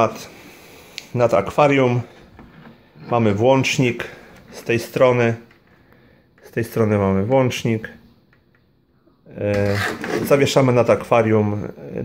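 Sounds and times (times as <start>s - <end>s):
man speaking: 0.0s - 0.4s, 1.1s - 2.1s, 3.0s - 5.5s, 6.4s - 8.1s, 9.2s - 12.0s.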